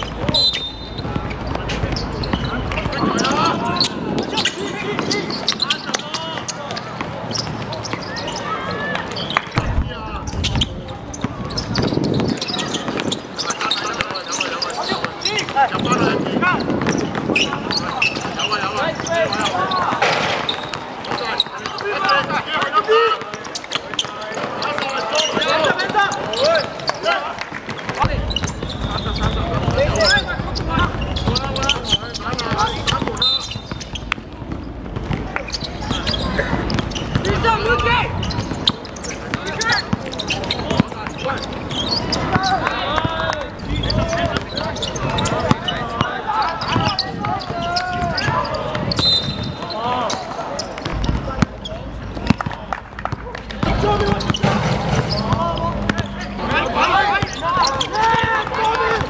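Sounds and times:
people calling out and talking: 0.0 - 59.0
basketball bouncing on hard court: 10.4 - 13.2, 16.6 - 27.0, 27.6 - 43.2, 43.8 - 45.8, 50.8 - 59.0.

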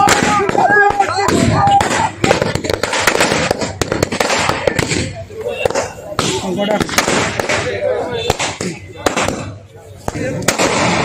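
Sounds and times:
firecrackers banging: 0.0 - 11.0.

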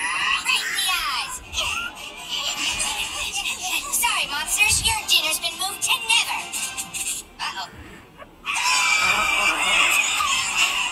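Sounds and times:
cartoon animals screeching and squawking: 8.4 - 10.9.

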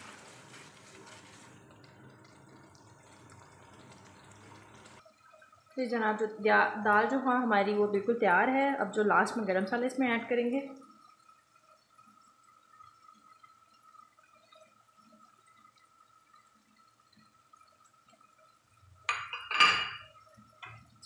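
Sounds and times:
faint bubbling in a pot: 0.0 - 21.0.

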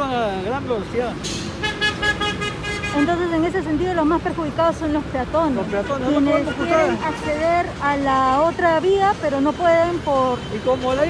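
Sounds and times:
passing road traffic: 0.0 - 11.0.

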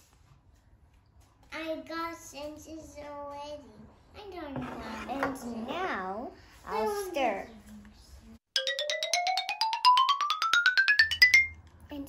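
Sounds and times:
rising xylophone-like notes: 8.6 - 11.6.

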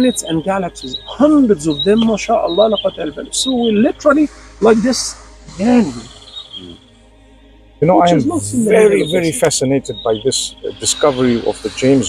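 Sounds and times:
insects chirring: 0.0 - 12.0
man murmuring: 5.8 - 6.8, 7.8 - 12.0.

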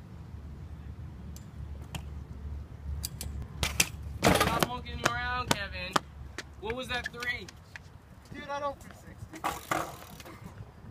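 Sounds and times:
bike clattering on concrete: 3.0 - 6.0, 9.3 - 10.4.

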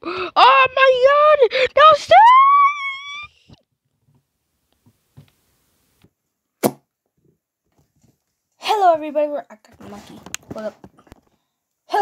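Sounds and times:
person shouting: 0.4 - 3.3
sharp knock: 6.6 - 6.8.

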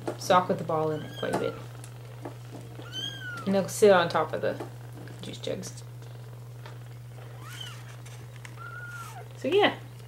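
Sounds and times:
kitten mewing: 2.8 - 3.5, 7.3 - 9.4.

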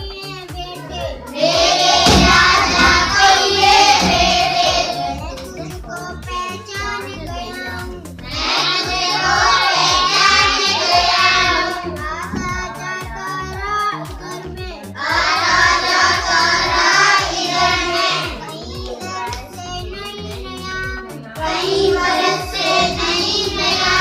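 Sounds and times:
girl singing: 0.0 - 24.0
children singing: 0.5 - 24.0.

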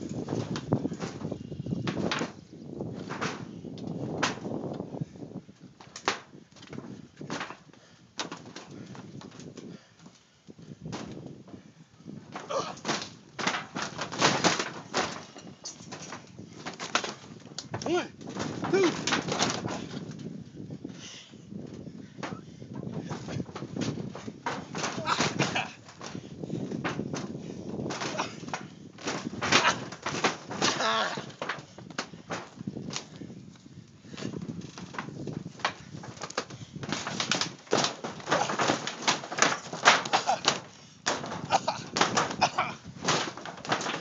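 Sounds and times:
bodies bouncing on trampoline: 0.0 - 44.0.

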